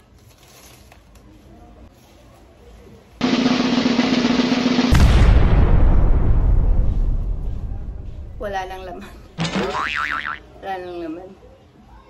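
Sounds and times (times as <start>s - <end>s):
cartoon boing: 9.4s - 10.4s.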